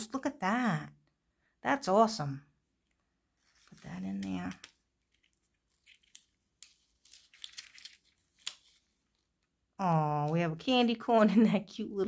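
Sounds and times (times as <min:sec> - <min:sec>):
paper rustling and crinkling: 0:03.4 - 0:09.4.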